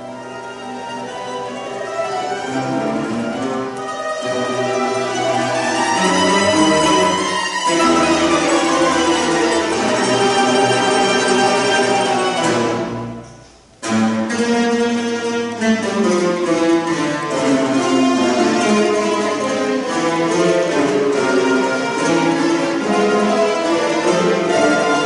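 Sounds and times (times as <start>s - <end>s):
mandolin orchestra playing: 0.0s - 25.0s.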